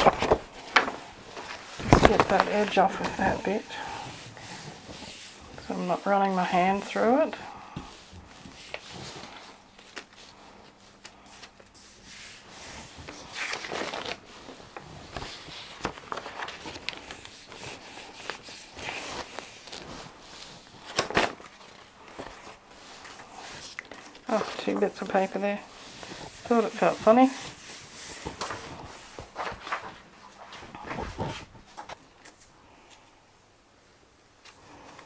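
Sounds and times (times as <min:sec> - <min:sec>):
paper crackle: 0:00.0 - 0:05.4, 0:13.0 - 0:32.5
paper rustling and crinkling: 0:00.0 - 0:33.0.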